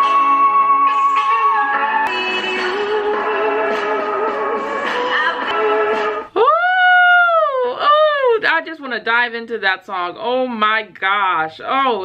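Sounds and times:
woman's high-pitched wordless exclamation: 6.4s - 8.7s.

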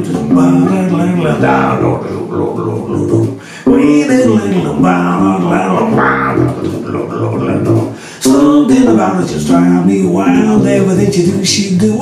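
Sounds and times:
electric bass guitar riff: 0.0s - 12.0s.

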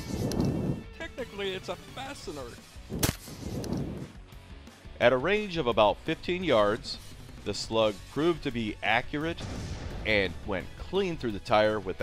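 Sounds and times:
shotgun shot with echo: 2.9s - 3.4s, 9.3s - 10.3s.

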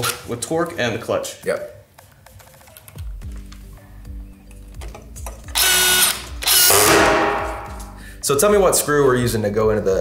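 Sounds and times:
screw driven into metal and wood: 5.5s - 7.9s
cordless screw gun whirring: 5.6s - 6.9s.

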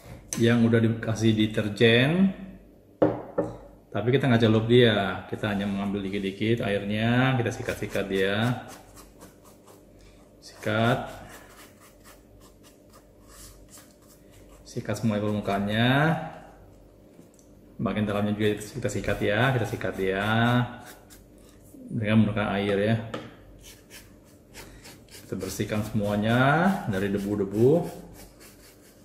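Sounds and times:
toothbrush scrubbing fabric: 7.6s - 9.8s, 10.5s - 15.6s, 19.5s - 21.6s, 25.0s - 29.0s
plastic brush scrubbing fabric: 25.1s - 29.0s.

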